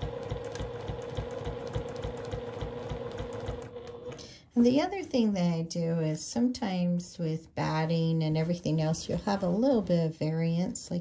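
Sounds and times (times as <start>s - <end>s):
sewing machine running: 0.0s - 4.4s.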